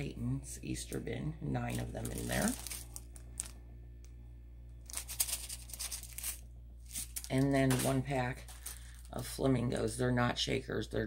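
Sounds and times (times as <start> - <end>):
steady low hum: 0.0 - 11.0
plastic packaging crinkling: 1.6 - 3.7, 4.8 - 9.4.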